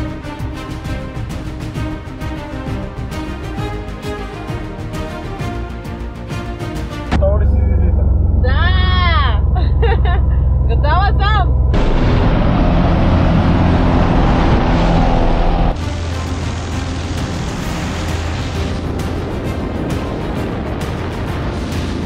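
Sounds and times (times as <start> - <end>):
loud low hum: 7.0 - 22.0
wind rush: 11.7 - 22.0
scattered crackles: 15.7 - 22.0.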